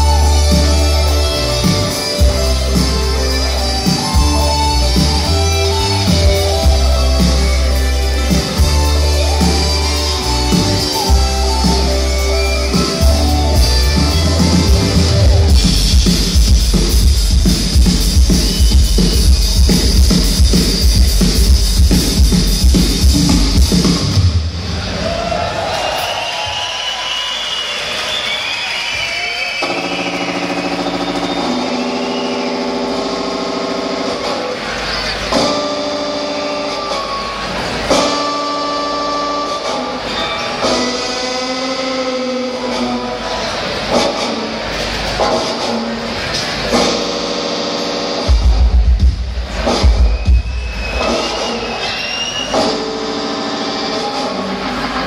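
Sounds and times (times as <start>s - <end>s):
live rock band through pa: 0.0s - 25.3s, 25.9s - 55.0s
heavy bass and drum hits: 12.8s - 24.7s.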